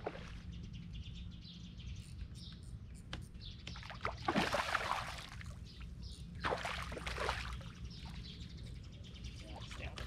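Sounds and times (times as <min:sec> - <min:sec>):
faint bird chirps: 0:00.5 - 0:03.9.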